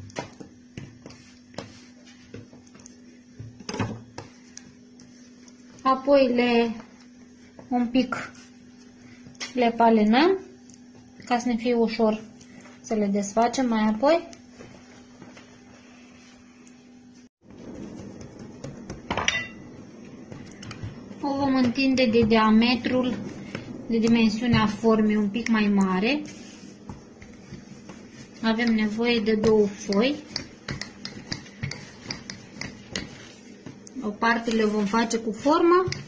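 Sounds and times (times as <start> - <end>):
faint steady hum: 0.0 - 36.0
rustling and handling dough: 0.0 - 36.0.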